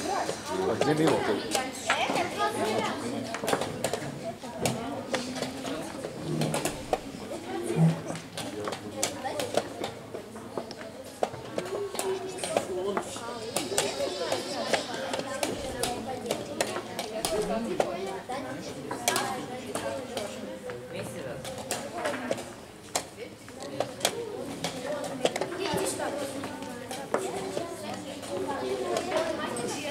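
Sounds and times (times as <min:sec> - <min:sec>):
chatter of voices: 0:00.0 - 0:29.9.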